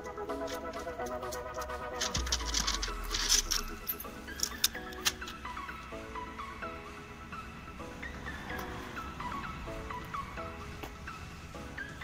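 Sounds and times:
light melody of stepping notes: 0.0 - 12.0.

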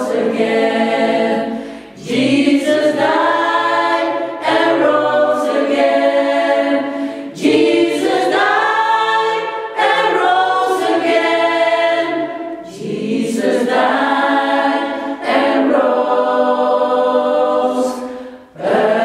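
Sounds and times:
choir singing a cappella: 0.0 - 19.0.

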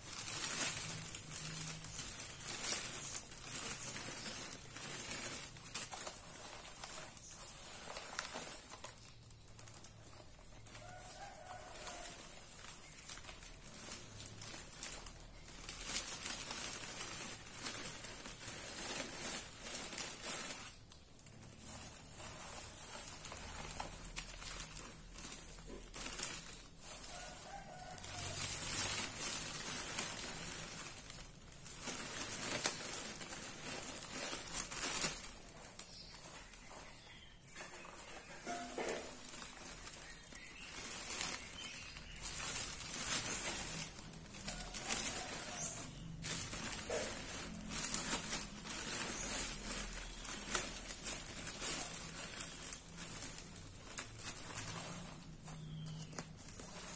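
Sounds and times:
dry grass rustling: 0.0 - 56.9
plastic bag crinkling: 0.0 - 56.9.

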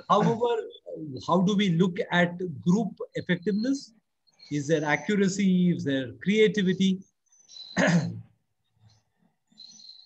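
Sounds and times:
man clearing his throat: 7.8 - 8.3.

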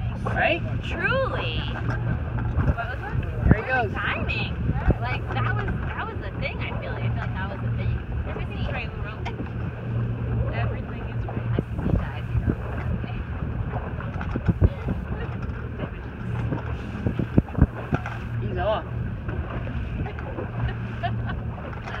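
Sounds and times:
boat motor running: 0.0 - 22.0
water washing past hull: 0.0 - 22.0
wind buffeting microphone: 0.0 - 22.0.

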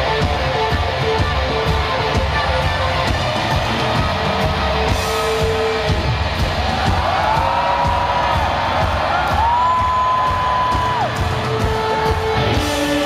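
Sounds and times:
distorted electric guitar: 0.0 - 13.0
drums: 0.0 - 13.0.

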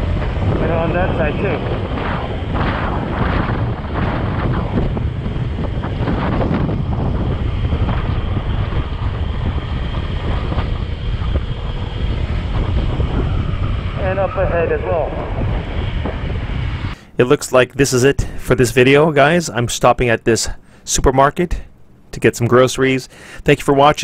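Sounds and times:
motorcycle engine: 0.0 - 17.0
wind buffeting microphone: 0.0 - 17.0
road noise: 0.0 - 17.6.

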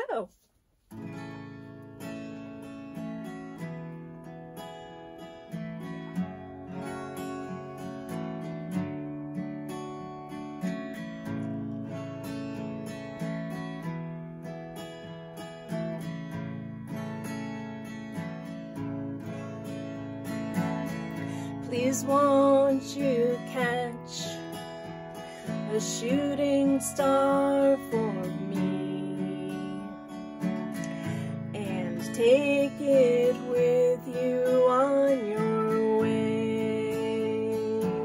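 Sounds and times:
acoustic guitar strumming: 0.8 - 38.0.

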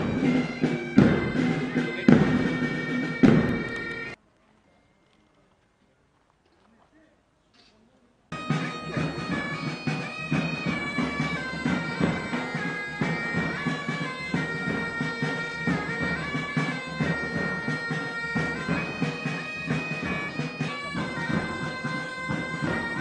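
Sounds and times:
bagpipes playing lament: 0.0 - 4.2, 8.3 - 23.0.

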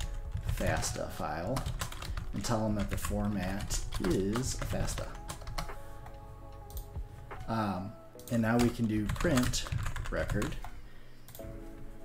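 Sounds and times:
computer keyboard typing: 0.0 - 7.5, 8.2 - 11.4.

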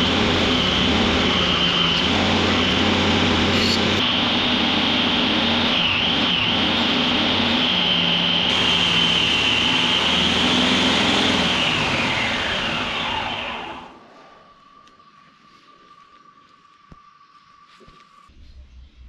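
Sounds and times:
belt grinder whining: 0.0 - 14.0.

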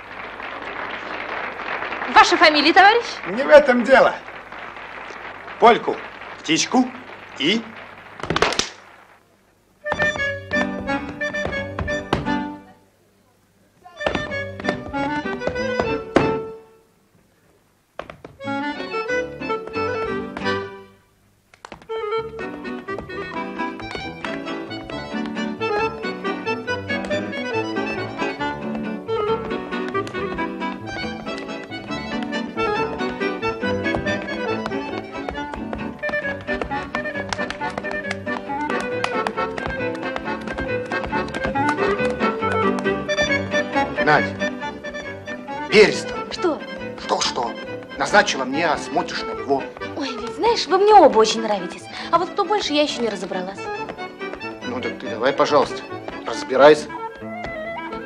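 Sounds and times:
accordion dance band playing polka: 0.9 - 8.3, 9.8 - 12.8, 14.0 - 16.6, 18.3 - 20.9, 21.9 - 58.0.

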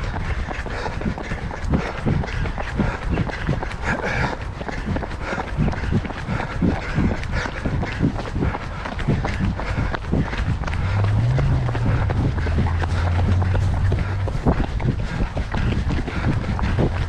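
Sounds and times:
running footfalls on gravel: 0.0 - 17.0.

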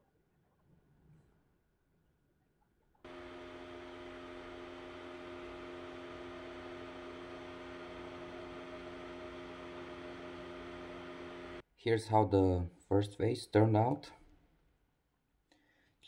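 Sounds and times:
electric fan humming: 3.1 - 11.6.

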